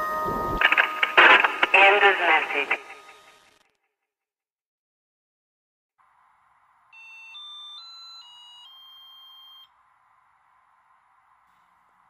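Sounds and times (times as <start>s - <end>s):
charger beep tune: 7.0s - 9.7s.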